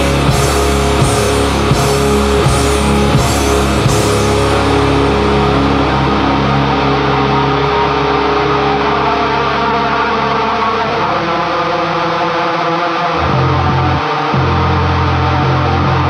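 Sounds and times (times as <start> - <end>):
distorted guitar wall: 0.0 - 16.0
low bass notes: 0.0 - 16.0.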